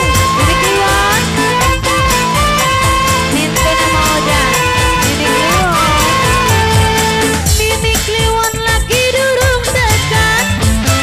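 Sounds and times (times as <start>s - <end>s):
held melody note: 0.4s - 7.6s
low drum strokes bending down: 3.5s - 7.6s.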